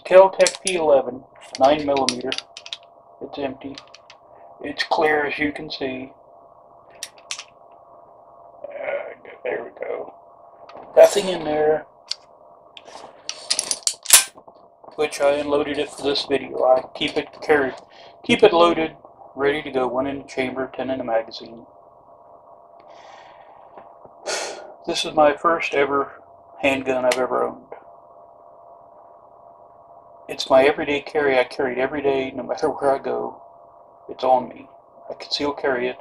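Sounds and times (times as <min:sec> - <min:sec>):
man speaking: 0:00.0 - 0:02.5, 0:03.2 - 0:03.9, 0:04.6 - 0:06.1, 0:08.6 - 0:10.1, 0:10.9 - 0:11.8, 0:15.0 - 0:21.6, 0:24.6 - 0:27.8, 0:30.3 - 0:33.4, 0:34.1 - 0:36.0
faint steady hum: 0:00.0 - 0:36.0
man inhaling sharply: 0:24.3 - 0:24.7.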